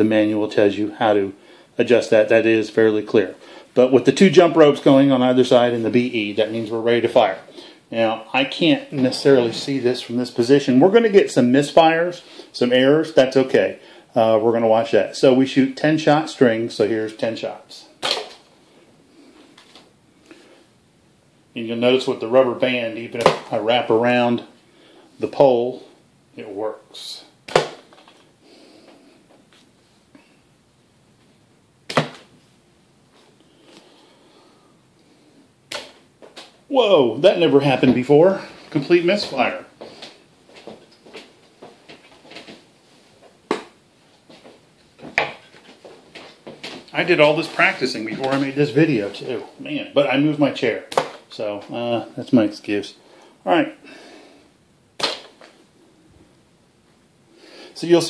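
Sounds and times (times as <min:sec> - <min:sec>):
rubber band snap: 0:31.9 - 0:32.3, 0:35.7 - 0:36.6, 0:55.0 - 0:55.5.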